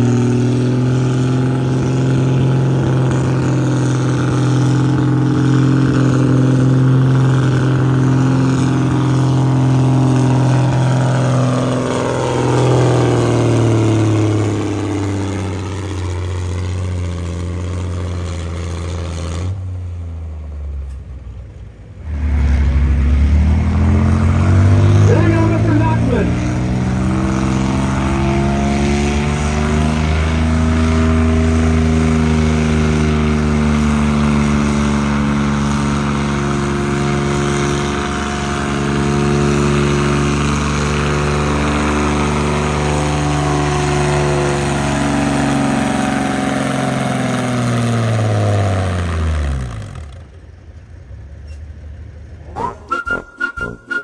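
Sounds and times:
engine revving: 0.0s - 21.0s, 21.9s - 50.4s
vehicle engine running under load: 0.0s - 54.0s.

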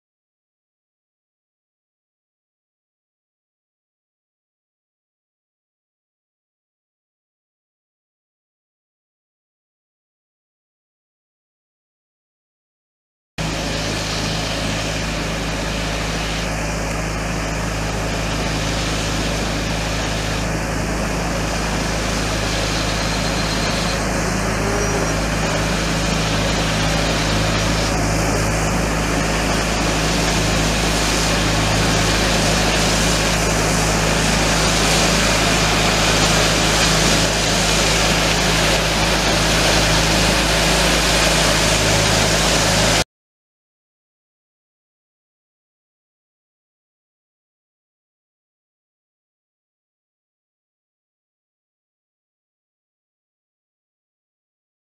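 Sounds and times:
truck engine running: 13.4s - 43.0s
broad hiss: 17.4s - 43.0s.

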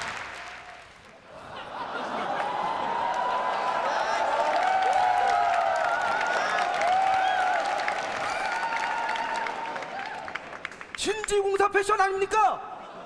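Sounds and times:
audience applauding and cheering: 0.0s - 11.5s.

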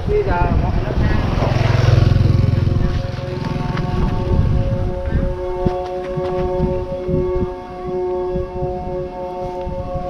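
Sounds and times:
motorcycle engine running: 0.1s - 6.8s.

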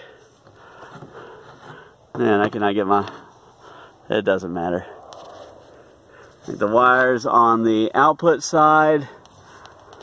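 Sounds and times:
faint background noise: 0.0s - 10.0s.

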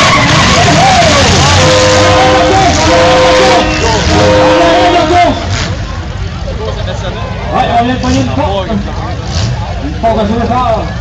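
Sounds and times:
car engines rumbling: 0.0s - 11.0s.

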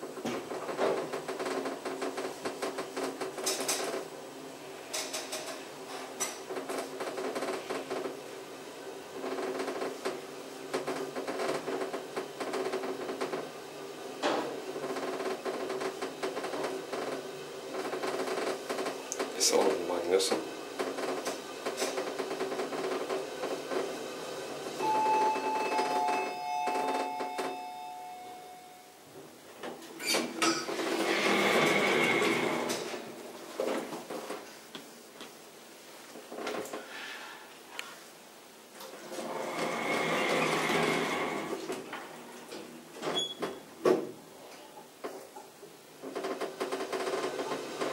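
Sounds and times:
two-tone chime: 24.8s - 28.9s
automatic doors whirring: 29.7s - 33.3s, 39.0s - 43.8s.

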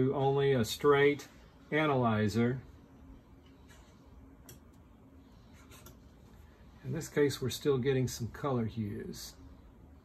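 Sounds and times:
hands rubbing microscope controls: 3.3s - 6.6s.

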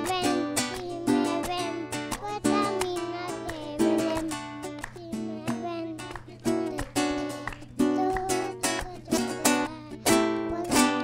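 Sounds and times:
person singing a carol: 0.0s - 11.0s
strummed acoustic guitar: 0.0s - 11.0s.

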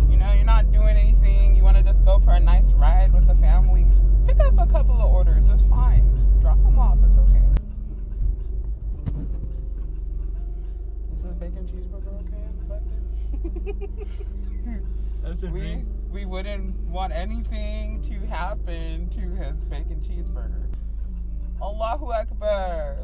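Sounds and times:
car cabin road noise: 0.0s - 23.0s
deep rumble: 0.0s - 23.0s.

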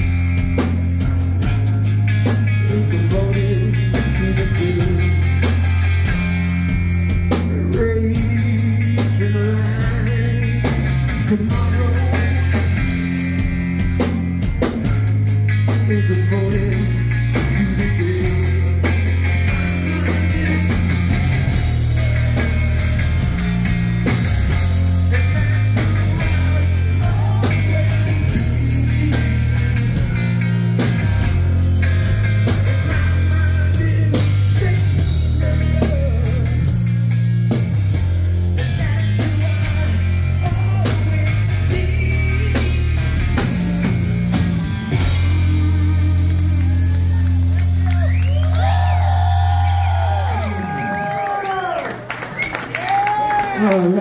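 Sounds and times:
heavy rock band playing: 0.0s - 51.8s
crowd cheering and shouting: 45.4s - 54.0s.

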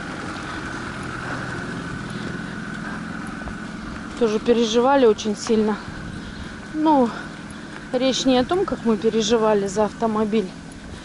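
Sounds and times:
car driving past: 0.0s - 7.9s.

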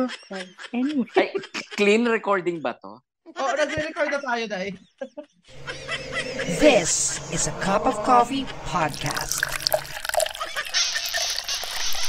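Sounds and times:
person laughing: 0.0s - 2.0s, 5.0s - 11.9s
steady background sound: 5.5s - 11.8s.

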